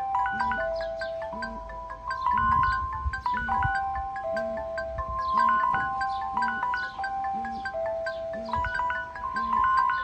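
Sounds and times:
electronic chime melody: 0.0 - 10.0.

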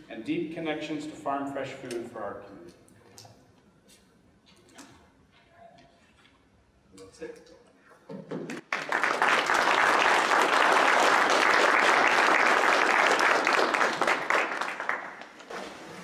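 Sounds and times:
audience applauding: 8.5 - 15.5.

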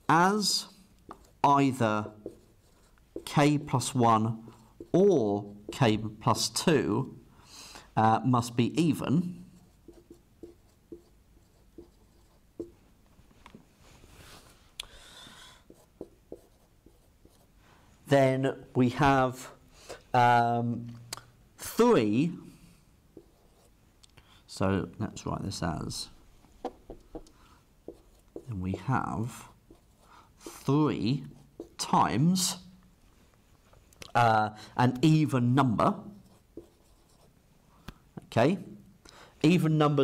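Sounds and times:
marker pen writing on whiteboard: 0.0 - 6.7, 9.0 - 12.8, 15.2 - 17.5, 23.1 - 23.8, 26.4 - 32.6, 35.8 - 37.4.

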